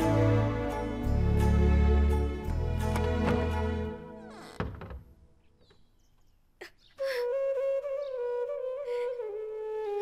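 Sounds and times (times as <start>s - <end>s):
background music: 0.0s - 4.6s
wooden door thunk: 2.8s - 5.8s.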